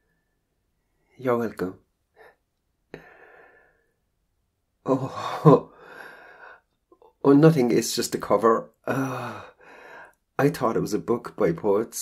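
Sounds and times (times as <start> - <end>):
man speaking: 1.2 - 1.9, 7.2 - 9.4, 10.4 - 12.0
man sighing: 4.8 - 6.6, 8.8 - 9.8.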